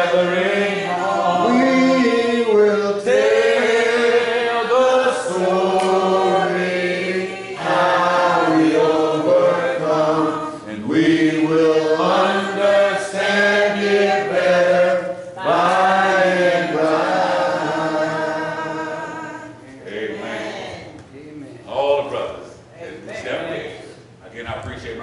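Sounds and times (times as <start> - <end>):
congregation singing a hymn: 0.0 - 21.0.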